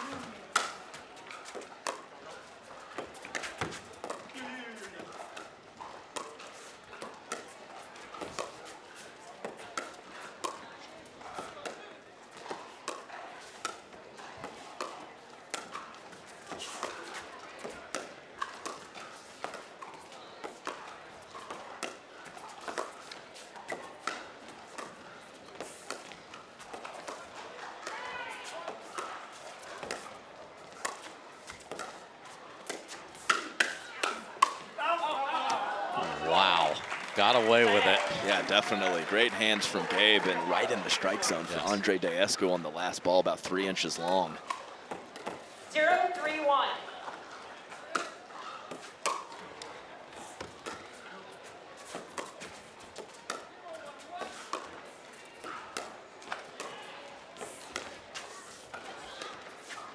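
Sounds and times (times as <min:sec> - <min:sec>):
low crowd chatter: 0:00.0 - 0:59.9.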